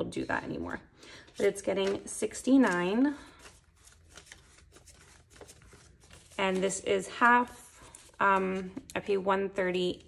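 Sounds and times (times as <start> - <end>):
banknotes flicking and rustling: 1.2 - 9.0.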